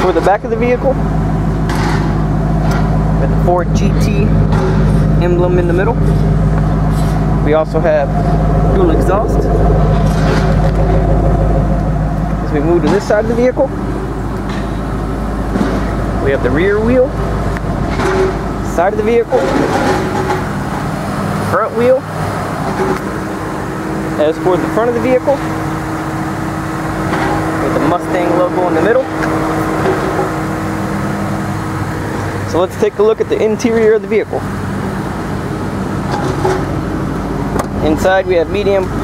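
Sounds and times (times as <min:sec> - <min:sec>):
car engine idling: 0:00.0 - 0:39.0
low mechanical hum: 0:00.0 - 0:39.0
outdoor background noise: 0:00.0 - 0:39.0
person speaking: 0:07.2 - 0:11.0, 0:16.2 - 0:17.2.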